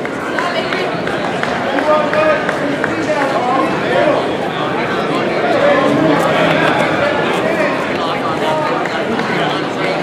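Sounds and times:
babble of many voices: 0:00.0 - 0:10.0.

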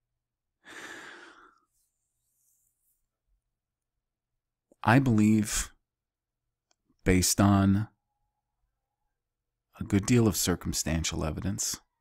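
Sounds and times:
man sighing exhale: 0:00.6 - 0:01.6.

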